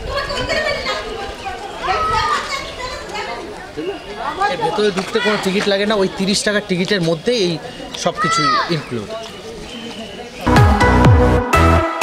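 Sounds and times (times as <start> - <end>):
children shouting and chattering: 0.0 - 10.6.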